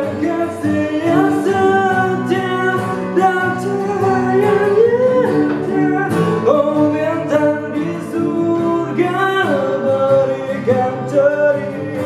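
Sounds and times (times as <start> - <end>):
man singing long notes: 0.0 - 12.0
strummed acoustic guitars: 0.0 - 12.0.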